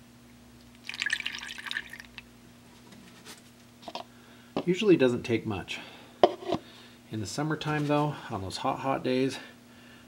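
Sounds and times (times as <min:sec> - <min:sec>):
water trickling through funnel: 0:00.7 - 0:02.3.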